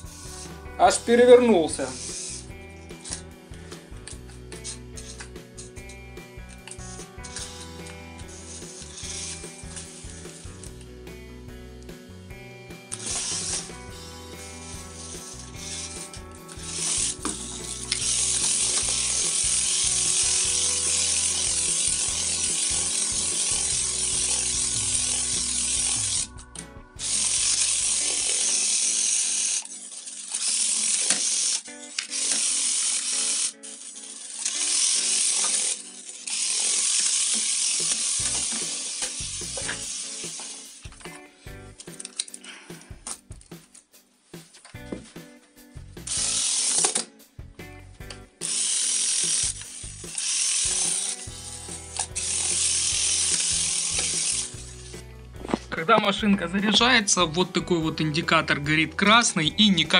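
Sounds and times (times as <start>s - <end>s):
rc car motor and gears whirring: 0.0s - 10.9s, 12.8s - 41.2s, 46.0s - 47.1s, 48.0s - 55.8s.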